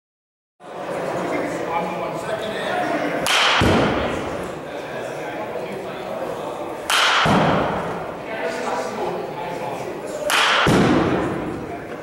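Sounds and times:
bat cracking ball: 0:03.2 - 0:04.3, 0:06.8 - 0:08.0, 0:10.2 - 0:11.5.

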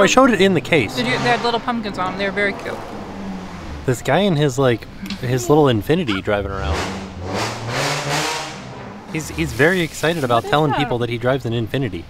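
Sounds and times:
car driving past revving: 0:00.0 - 0:10.5.

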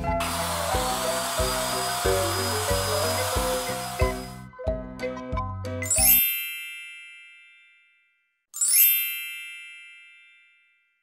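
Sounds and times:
music: 0:00.0 - 0:06.4
high chime sound effects: 0:05.8 - 0:11.0.

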